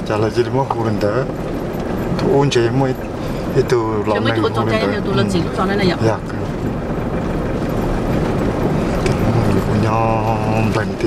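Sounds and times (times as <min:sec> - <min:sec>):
car engine and tyre rumble: 0:00.0 - 0:11.0.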